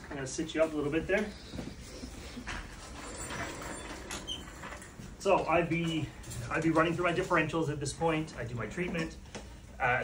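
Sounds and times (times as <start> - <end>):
stretcher frame rustles: 2.4 - 7.4.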